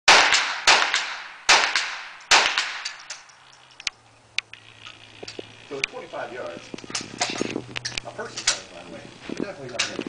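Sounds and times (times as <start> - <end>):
gunshots echoing under metal roof: 0.1 - 3.1.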